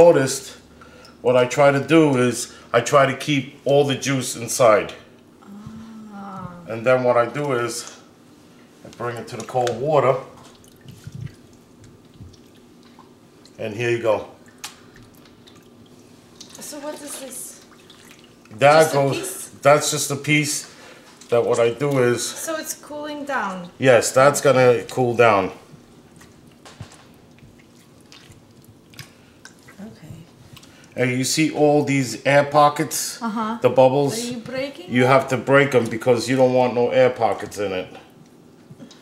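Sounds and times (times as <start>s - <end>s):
water dripping: 8.9s - 31.0s
soft splash: 10.3s - 13.6s, 17.6s - 18.5s, 26.2s - 29.8s.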